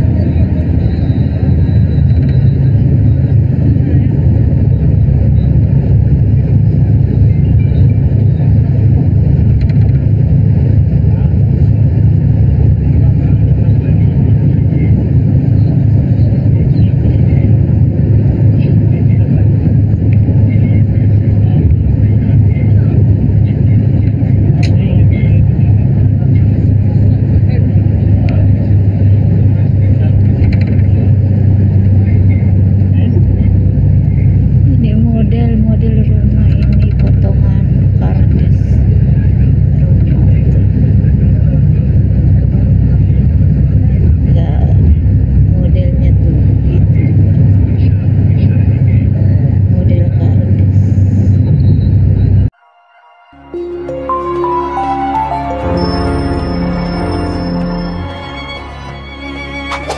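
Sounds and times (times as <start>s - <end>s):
faint voices: 0.0s - 52.5s
vehicle rumble from inside cabin: 0.0s - 52.6s.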